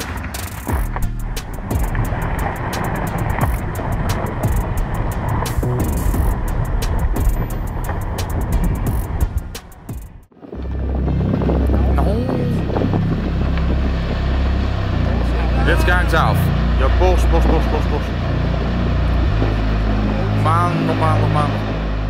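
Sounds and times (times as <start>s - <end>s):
rockfall rumbling: 0.0s - 9.4s, 10.4s - 22.0s.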